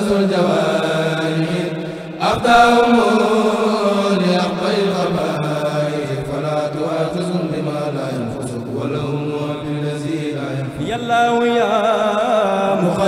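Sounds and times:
men's choir chanting in unison: 0.0s - 13.0s.

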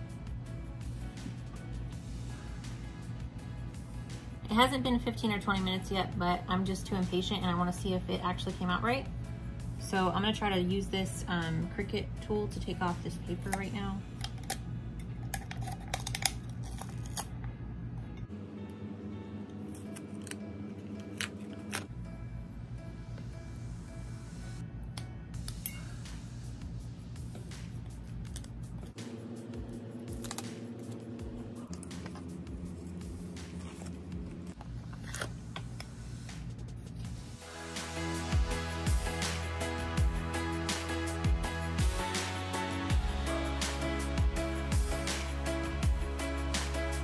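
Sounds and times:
music with slow held chords: 0.0s - 15.6s, 16.2s - 34.8s, 35.4s - 47.0s
paper and tape crackling and tearing: 30.0s - 32.3s.

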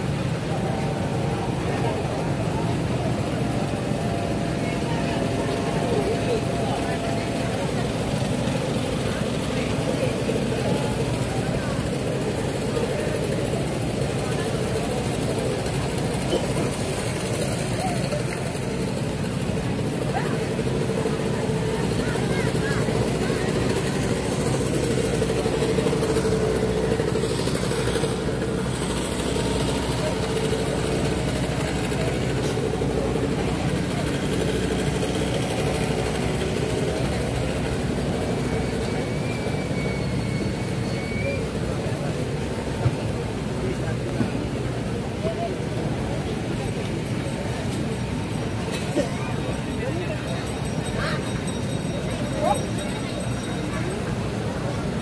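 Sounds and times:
crowd chatter: 0.0s - 55.0s
steady mechanical hum: 0.0s - 55.0s.

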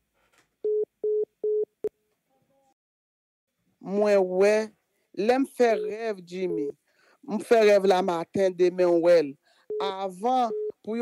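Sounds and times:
telephone line beeps: 9.7s - 10.8s.

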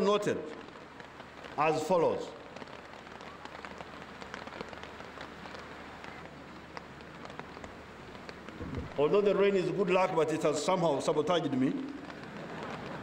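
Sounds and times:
steady rain falling: 0.0s - 13.0s
soft low bump: 8.6s - 9.0s.

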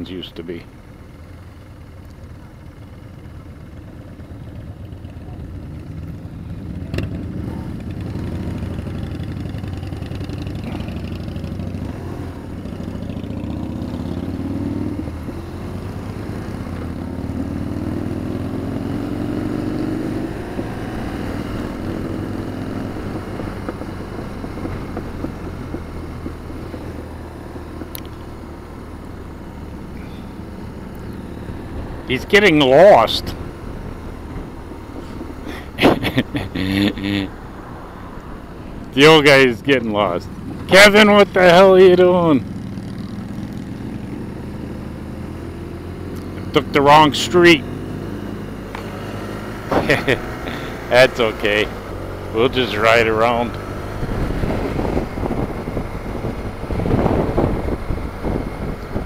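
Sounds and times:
motorcycle engine accelerating: 0.7s - 59.0s.

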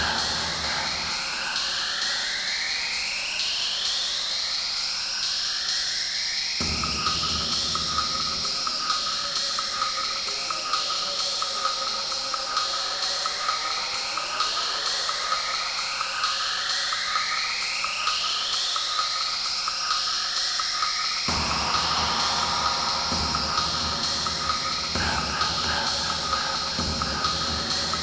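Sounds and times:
bass and kick drum: 0.0s - 1.5s, 6.6s - 8.9s, 21.3s - 28.0s
techno music: 0.0s - 3.0s, 6.6s - 15.8s, 18.0s - 28.0s
ticking hi-hat: 0.0s - 28.0s
rising noise sweeps: 21.3s - 28.0s.

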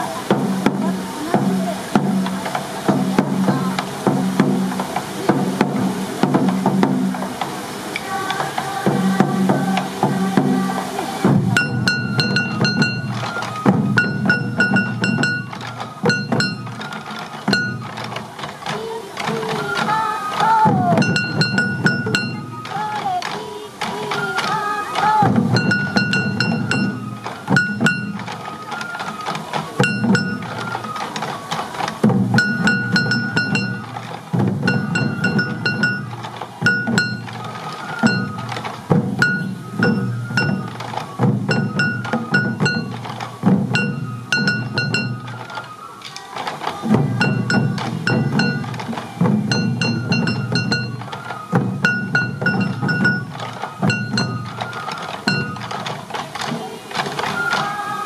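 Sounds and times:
high bamboo flute: 0.0s - 58.0s
taiko drums beaten with sticks: 0.0s - 58.0s.

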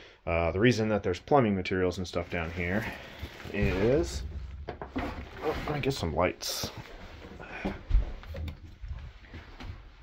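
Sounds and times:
handling noise: 2.3s - 9.9s
footstep thumps: 3.2s - 8.6s.

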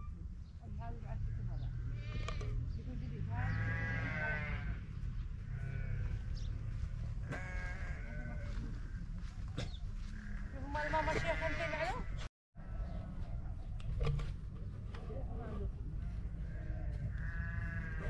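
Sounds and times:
sheep bleating: 3.3s - 4.9s, 5.5s - 9.0s, 10.0s - 12.8s, 16.4s - 18.0s.

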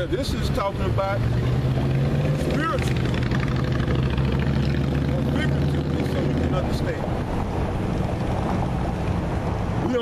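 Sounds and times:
road traffic engine rumble: 0.0s - 10.0s.

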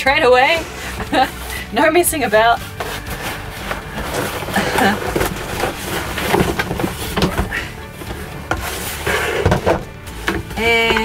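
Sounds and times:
background music: 0.0s - 11.0s
cardboard box rustling: 0.5s - 11.0s.

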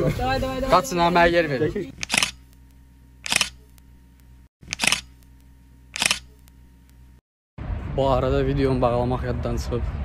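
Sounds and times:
camera shutter click: 2.0s - 2.5s, 3.2s - 3.8s, 4.6s - 5.2s, 6.0s - 6.5s.

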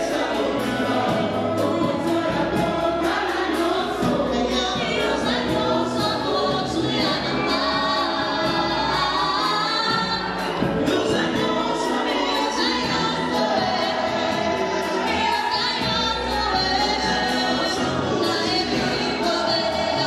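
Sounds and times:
accompaniment with steady beat: 0.0s - 20.0s
backing singers: 0.0s - 20.0s
woman singing into microphone: 0.0s - 20.0s.

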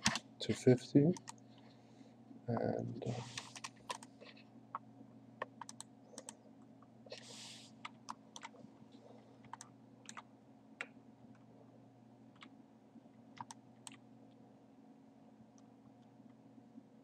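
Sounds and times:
computer keyboard and mouse clicks: 0.0s - 0.3s, 1.2s - 1.4s, 3.4s - 4.8s, 5.4s - 6.4s, 7.8s - 8.6s, 9.4s - 11.4s, 13.3s - 14.0s
low electrical hum: 0.0s - 17.0s.

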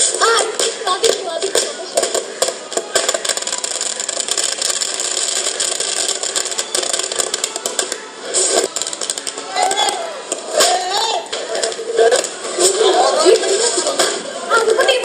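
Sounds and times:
fireworks crackling and banging: 0.0s - 14.9s.

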